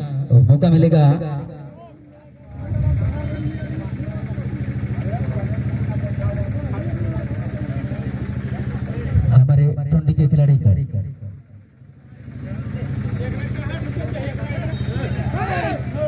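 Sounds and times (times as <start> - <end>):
small motorcycle engine running: 1.6 - 9.4, 10.9 - 16.0.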